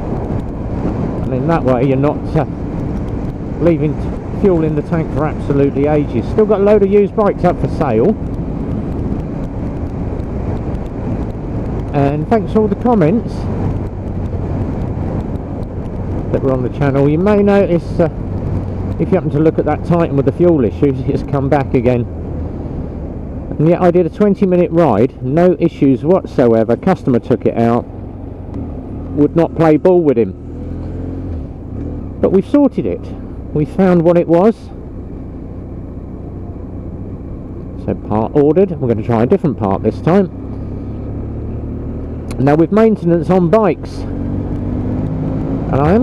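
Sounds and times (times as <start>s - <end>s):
motorcycle engine running: 0.0s - 24.6s, 39.5s - 46.0s
wind rushing over microphone: 0.0s - 46.0s.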